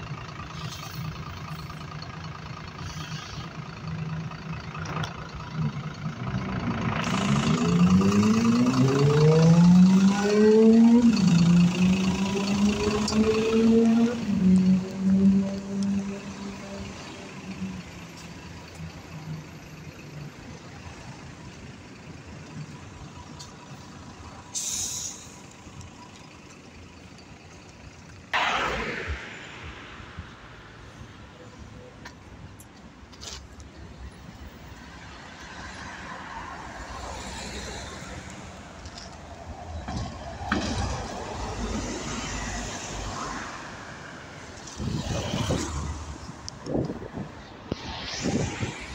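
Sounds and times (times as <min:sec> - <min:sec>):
bus engine hum: 0:00.0 - 0:48.9
traffic rumble: 0:00.0 - 0:48.9
air brakes hissing: 0:24.5 - 0:25.6
low rumbling: 0:28.4 - 0:31.9.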